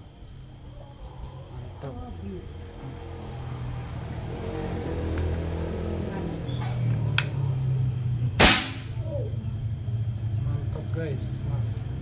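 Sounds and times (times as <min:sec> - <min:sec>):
air rifle pop: 0:08.4 - 0:08.9.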